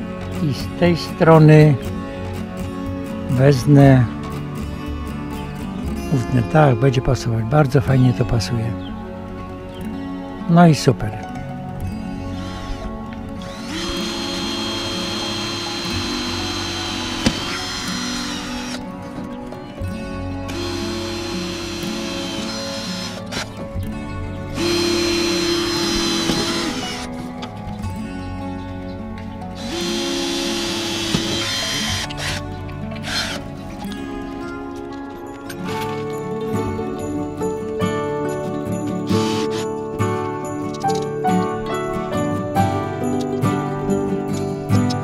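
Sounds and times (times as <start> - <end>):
cordless drill boring through metal: 12.2 - 18.9, 20.4 - 23.6, 24.6 - 27.2, 29.6 - 33.5, 39.1 - 39.7.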